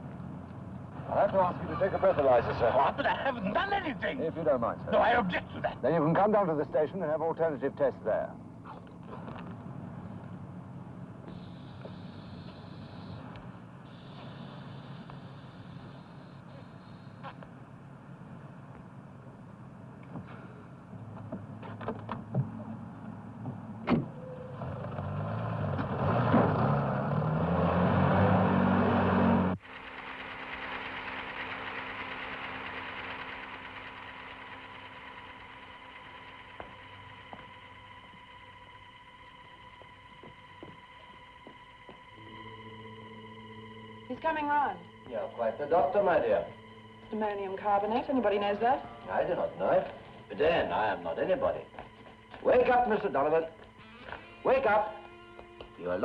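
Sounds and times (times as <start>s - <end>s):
car engine accelerating: 0.0s - 8.2s, 20.9s - 56.0s
steady hum with held tones: 0.0s - 24.6s, 29.2s - 56.0s.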